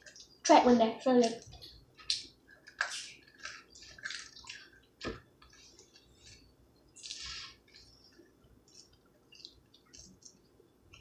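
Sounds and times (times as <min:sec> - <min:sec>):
wet chewing mouth sounds: 0:07.0 - 0:11.0.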